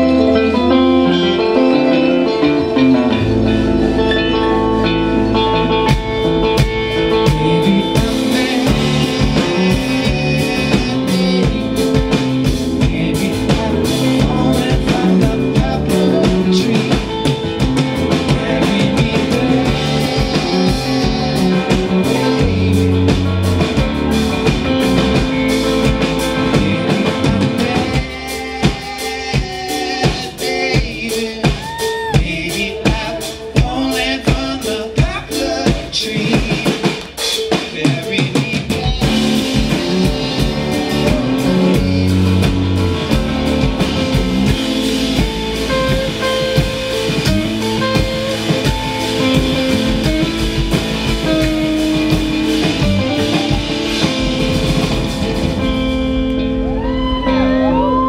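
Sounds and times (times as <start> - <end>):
bass guitar: 0.0 - 58.0
drum kit: 0.0 - 58.0.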